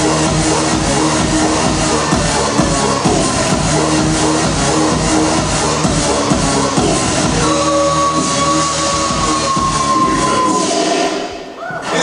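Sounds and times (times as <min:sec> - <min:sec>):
dance music with kick drum: 0:00.0 - 0:12.0
held high synth note: 0:07.2 - 0:11.6.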